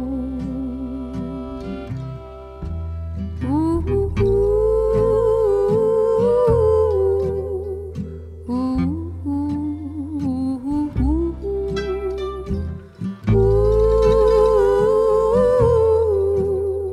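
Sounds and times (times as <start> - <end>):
fiddle melody: 0.0 - 7.7, 8.5 - 16.9
acoustic guitar strumming: 0.0 - 16.9
upright bass plucking: 0.0 - 16.9.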